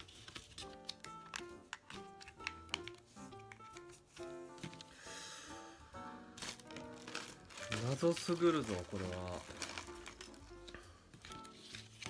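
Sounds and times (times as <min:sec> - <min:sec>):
background music with held notes: 0:00.0 - 0:12.0
man talking: 0:07.8 - 0:09.4.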